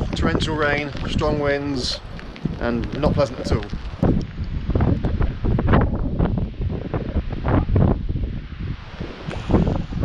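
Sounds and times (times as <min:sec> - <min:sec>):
gusting wind buffeting microphone: 0:00.0 - 0:10.0.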